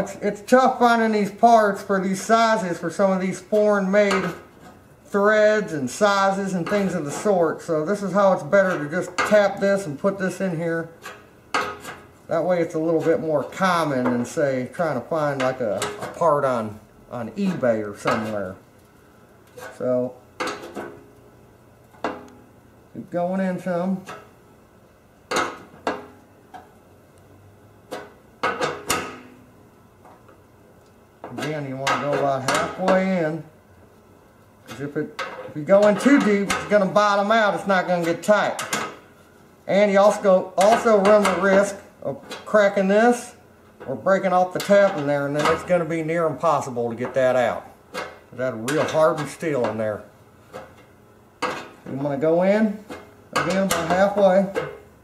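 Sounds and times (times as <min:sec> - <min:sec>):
man speaking: 0:00.0 - 0:04.4, 0:05.1 - 0:11.0, 0:12.3 - 0:18.6, 0:19.8 - 0:20.2, 0:22.9 - 0:24.1, 0:31.3 - 0:33.5, 0:34.7 - 0:38.7, 0:39.6 - 0:50.1, 0:51.9 - 0:54.6
man talking: 0:00.0 - 0:04.4, 0:05.1 - 0:11.0, 0:12.3 - 0:18.6, 0:19.7 - 0:20.2, 0:22.9 - 0:24.1, 0:31.3 - 0:33.5, 0:34.7 - 0:38.7, 0:39.6 - 0:50.1, 0:51.9 - 0:54.6.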